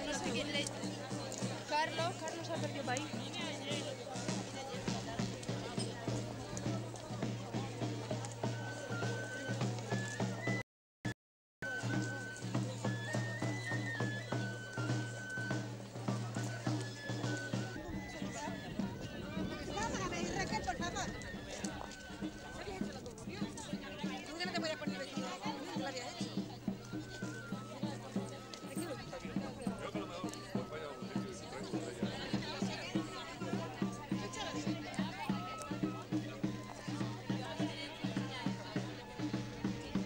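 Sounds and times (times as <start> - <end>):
steady drum beat: 0.0 - 10.5, 11.6 - 40.0
crowd voices: 0.0 - 10.6, 11.6 - 40.0.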